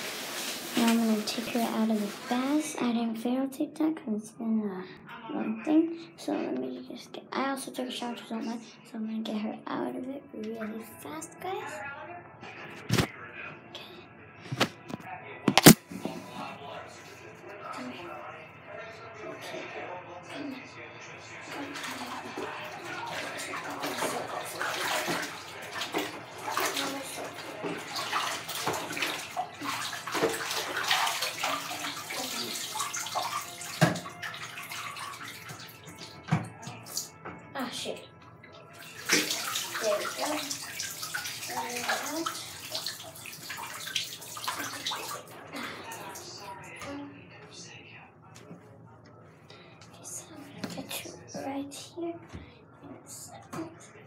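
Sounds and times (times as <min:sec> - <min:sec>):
water splashing in a bathtub: 0:00.0 - 0:02.9, 0:21.3 - 0:47.0.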